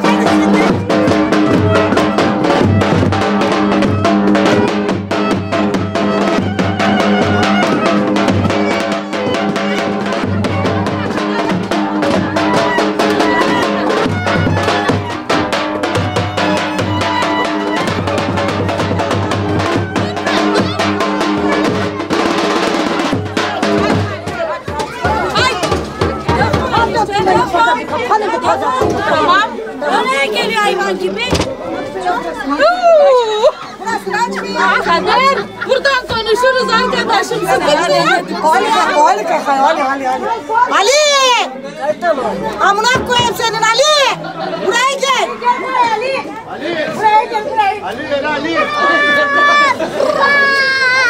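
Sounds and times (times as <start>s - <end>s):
music with drums: 0.0s - 31.6s, 42.6s - 45.2s
people talking and calling out: 0.0s - 51.0s
women chattering: 0.0s - 51.0s.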